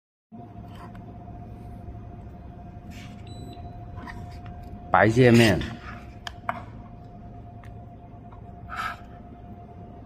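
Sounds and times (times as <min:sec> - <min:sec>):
low machine hum with whine: 0:00.3 - 0:10.0.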